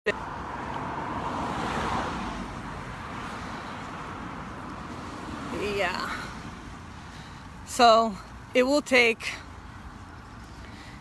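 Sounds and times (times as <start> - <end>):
car passing: 0.1 - 11.0.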